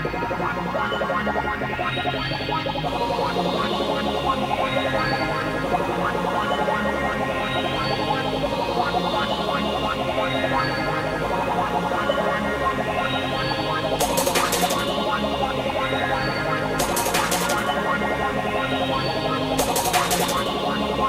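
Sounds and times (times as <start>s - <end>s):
techno dance music: 14.0s - 15.1s, 16.8s - 17.8s, 19.6s - 20.7s.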